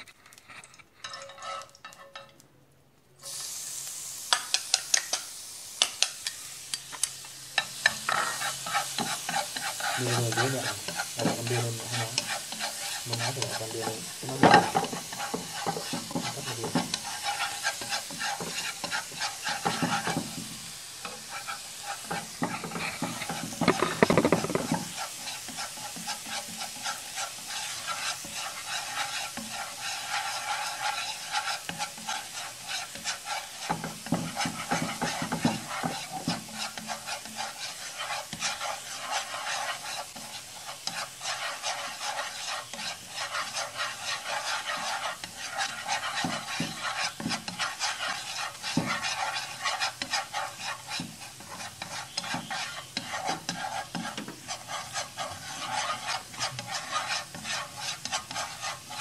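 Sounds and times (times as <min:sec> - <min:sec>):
chopsticks stirring in a pan: 0:00.0 - 0:02.4, 0:03.3 - 0:59.0
garlic sizzling in hot fat: 0:00.0 - 0:02.4, 0:03.2 - 0:59.0.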